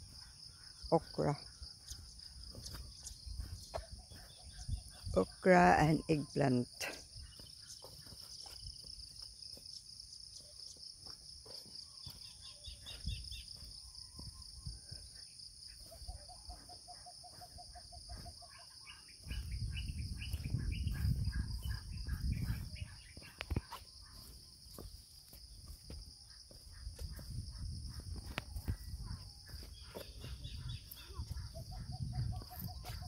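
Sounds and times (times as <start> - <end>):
rapid repeated calls: 11.6 - 24.9, 26.2 - 33.0.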